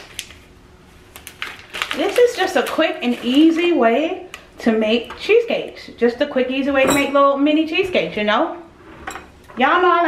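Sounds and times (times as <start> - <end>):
packet crinkling: 0.0 - 4.4.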